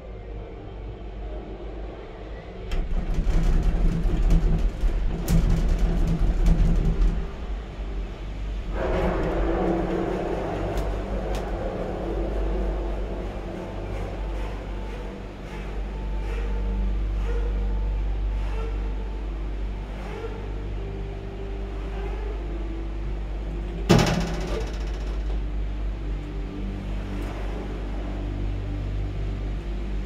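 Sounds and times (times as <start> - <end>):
cable car cabin rumbling: 0.0 - 30.0
faint music: 0.0 - 30.0.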